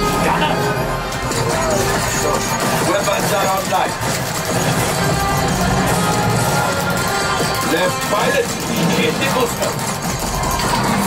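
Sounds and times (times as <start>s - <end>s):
soundtrack music: 0.0s - 11.0s.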